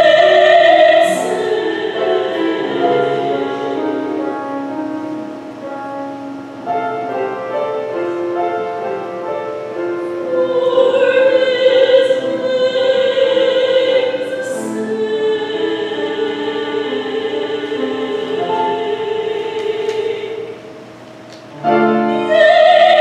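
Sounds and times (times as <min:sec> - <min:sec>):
choir singing: 0:00.0 - 0:05.2, 0:06.7 - 0:20.8, 0:21.5 - 0:23.0
piano accompaniment: 0:00.0 - 0:23.0.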